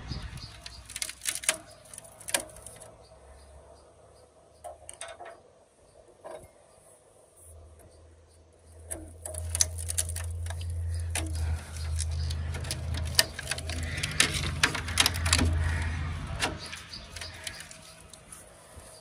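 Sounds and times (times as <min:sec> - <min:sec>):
steady low hum: 0:01.7 - 0:19.0
steel bar scraping copper windings: 0:08.8 - 0:19.0.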